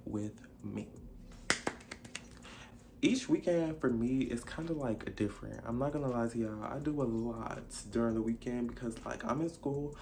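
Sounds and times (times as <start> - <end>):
finger snapping: 1.4 - 2.4.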